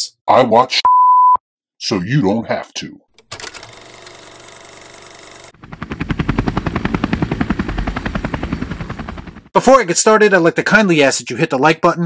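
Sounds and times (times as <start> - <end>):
rapid bass-heavy pulsing: 5.6 - 9.5
steady drone: 5.6 - 9.5.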